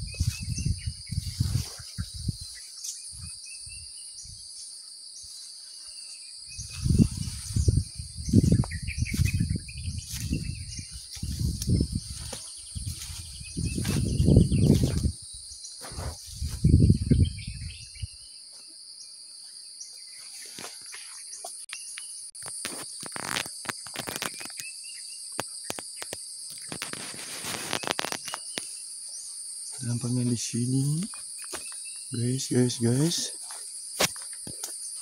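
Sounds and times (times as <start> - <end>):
low microphone rumbles: 0.0 - 2.5, 6.6 - 15.2, 15.9 - 18.1
high-pitched insect drone: 0.0 - 35.0
rustling and crackling: 25.7 - 28.7.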